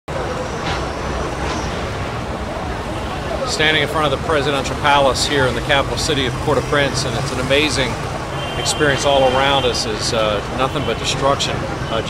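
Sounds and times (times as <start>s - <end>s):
street noise rumble with hiss: 0.1s - 12.0s.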